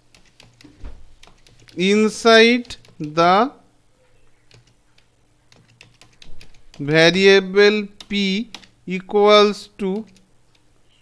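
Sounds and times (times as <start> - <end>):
computer keyboard typing: 0.0 - 3.4, 4.3 - 8.8, 9.8 - 10.7
person speaking: 1.3 - 3.7, 4.4 - 10.2.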